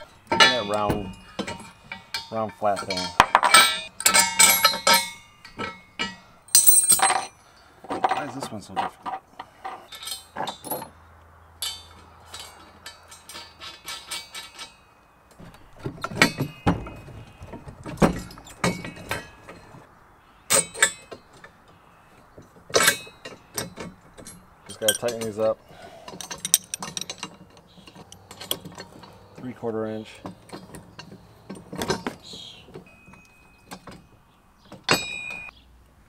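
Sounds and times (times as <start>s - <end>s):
metal parts clinking and knocking: 0.0s - 11.0s, 11.6s - 19.8s, 20.5s - 21.6s, 22.5s - 35.5s.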